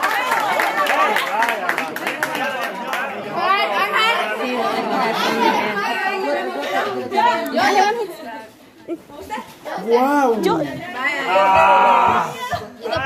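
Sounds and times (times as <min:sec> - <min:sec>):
people chattering excitedly: 0:00.0 - 0:13.0.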